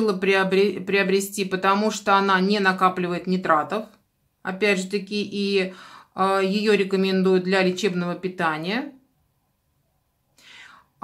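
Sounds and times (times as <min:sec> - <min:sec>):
woman breathing in: 0:05.7 - 0:06.2, 0:10.3 - 0:11.0.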